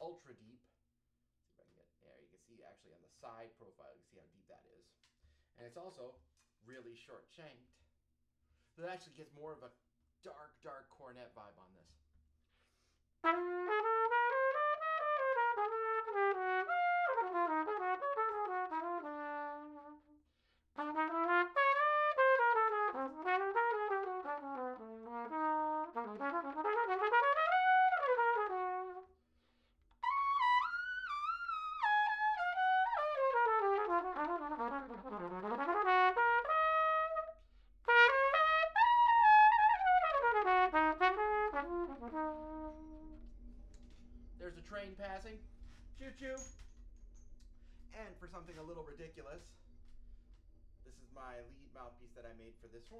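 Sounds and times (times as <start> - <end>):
cornet melody: 29.9 - 45.2.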